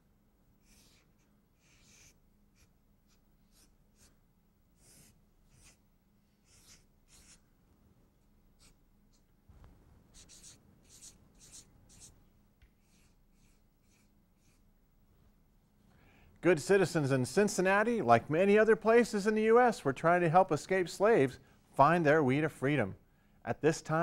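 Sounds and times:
marker scratching on paper: 0:00.6 - 0:04.2, 0:04.8 - 0:05.8, 0:06.4 - 0:07.4, 0:08.6 - 0:09.2, 0:10.1 - 0:12.2, 0:12.8 - 0:14.6.

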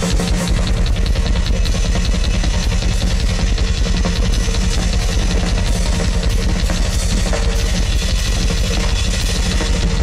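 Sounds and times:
heavy bass drum: 0:00.0 - 0:10.0
rock drum solo: 0:00.0 - 0:10.0.

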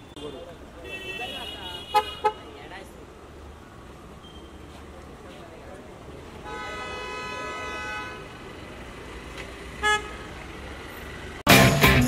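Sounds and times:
car horn: 0:00.0 - 0:02.5, 0:06.4 - 0:08.4, 0:09.8 - 0:10.4
loud music: 0:11.5 - 0:12.0.

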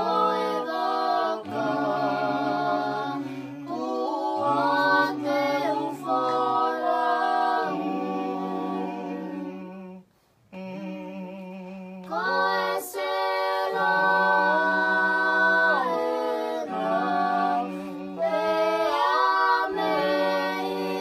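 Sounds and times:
group singing a cappella hymn: 0:00.0 - 0:21.0.

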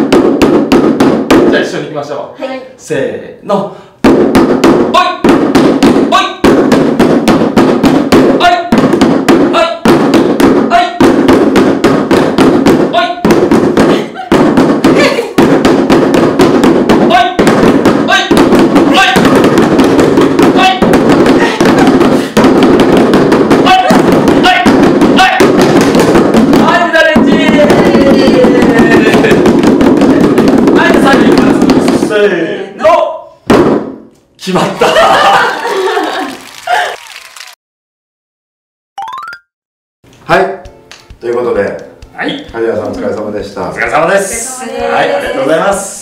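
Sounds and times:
group drumming on buckets: 0:00.0 - 0:01.8, 0:04.0 - 0:32.5, 0:33.4 - 0:34.1, 0:34.8 - 0:37.0, 0:40.4 - 0:46.0.

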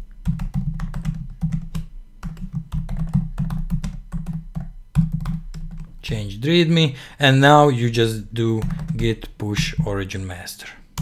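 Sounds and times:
computer keyboard typing: 0:00.2 - 0:06.0, 0:08.5 - 0:09.9.

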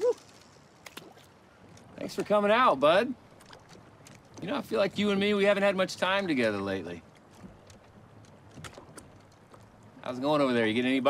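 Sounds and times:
water lapping against boat: 0:00.0 - 0:11.0.

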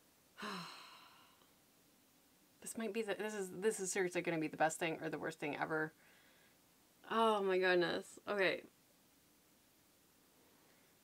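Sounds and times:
woman sighing: 0:00.4 - 0:01.5.

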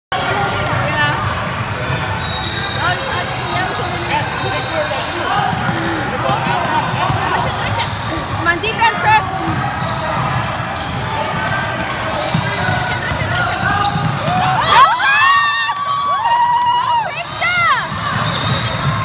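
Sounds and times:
sneakers squeaking: 0:00.7 - 0:14.7, 0:17.2 - 0:19.0
basketball bouncing: 0:05.4 - 0:08.0, 0:08.6 - 0:14.6.

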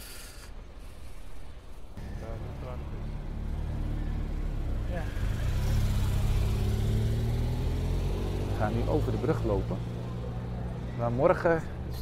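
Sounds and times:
passing traffic: 0:00.0 - 0:12.0
motor vehicle engine running: 0:02.0 - 0:12.0.

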